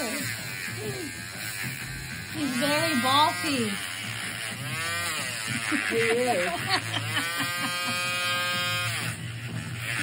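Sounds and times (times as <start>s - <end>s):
electric nail drill whining: 0.0s - 10.0s.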